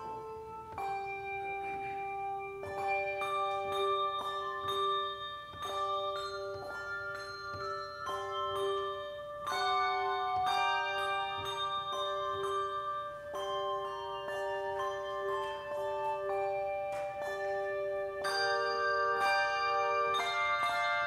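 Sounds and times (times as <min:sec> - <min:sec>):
handbell choir playing: 0:00.0 - 0:21.0.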